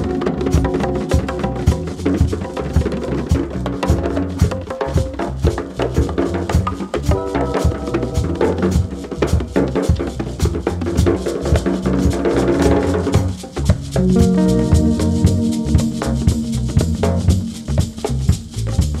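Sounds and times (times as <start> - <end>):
drums and hand percussion: 0.0 - 19.0
spiritual jazz: 0.0 - 19.0.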